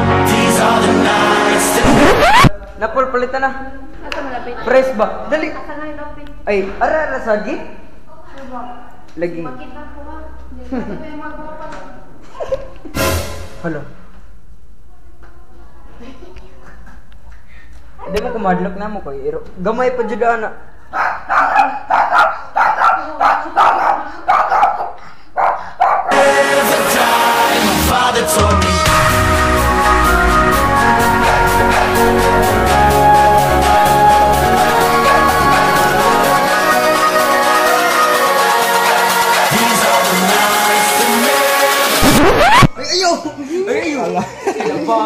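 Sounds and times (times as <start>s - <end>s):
music: 0.0s - 2.5s, 12.9s - 14.0s, 26.1s - 42.7s
small dog barking: 21.0s - 26.1s.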